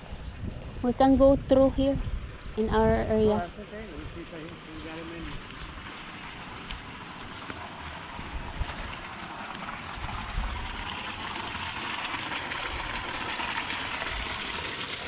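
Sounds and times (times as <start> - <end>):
wind buffeting microphone: 0.0 - 6.9, 8.0 - 9.2, 9.9 - 11.7
steady wind: 0.0 - 15.0.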